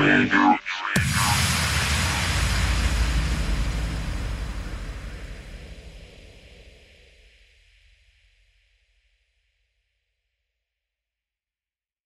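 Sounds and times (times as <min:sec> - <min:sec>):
deep bass rumble: 0:01.0 - 0:06.9
rushing noise wash: 0:01.0 - 0:07.2.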